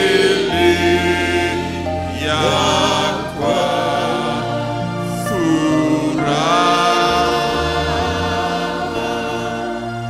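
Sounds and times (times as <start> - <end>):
worship group singing slowly: 0.0 - 10.0.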